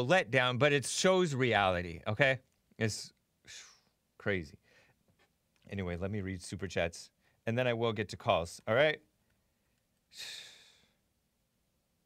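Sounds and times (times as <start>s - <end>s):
man exhaling into microphone: 10.2s - 11.0s.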